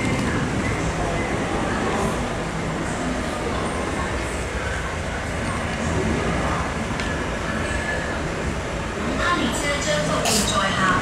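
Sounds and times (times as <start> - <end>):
metro train rumbling past: 0.0 - 11.0.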